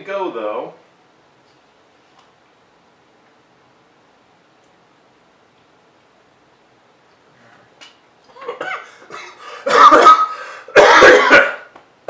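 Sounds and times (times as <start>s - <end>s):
man coughing hard: 8.4s - 11.7s.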